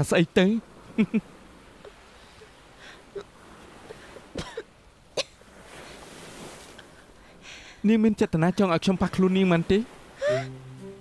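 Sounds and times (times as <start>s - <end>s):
person coughing: 4.4s - 5.3s.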